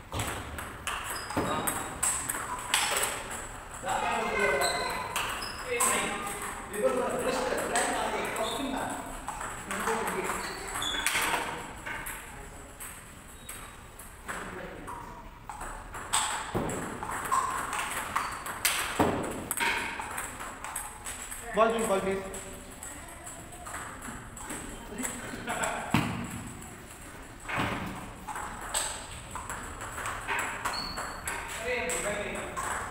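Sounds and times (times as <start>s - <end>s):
table tennis balls clicking: 0.1s - 32.9s.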